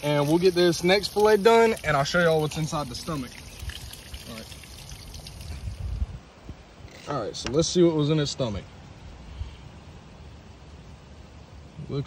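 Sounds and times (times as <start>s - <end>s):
water trickling: 0.0s - 6.2s.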